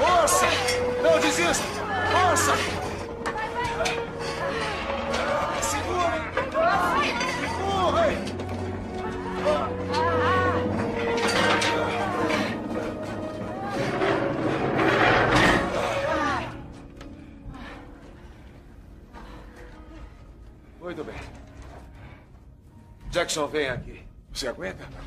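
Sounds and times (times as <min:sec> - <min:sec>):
people straining and crying out: 0:00.0 - 0:18.0
film score music: 0:00.0 - 0:25.0.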